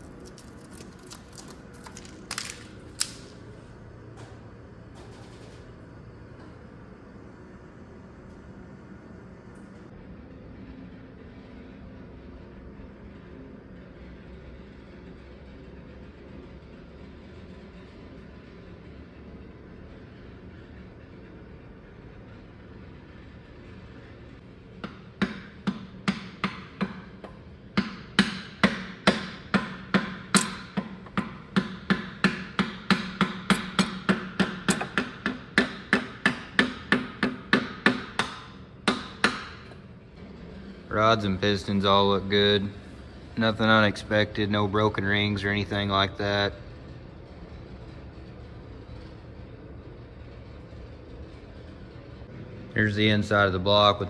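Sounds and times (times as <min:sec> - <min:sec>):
low shop hum: 0:00.0 - 0:54.0.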